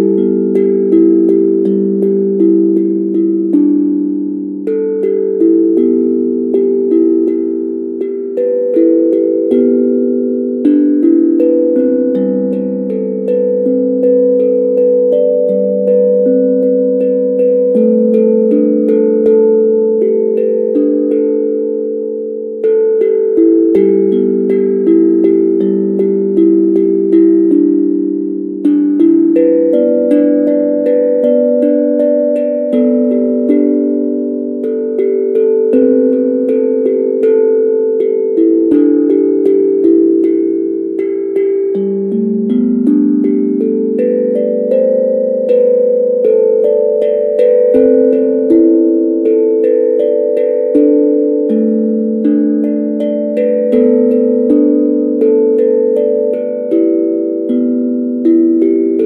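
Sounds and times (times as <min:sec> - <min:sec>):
steel tongue drum melody: 0:00.0 - 0:59.0.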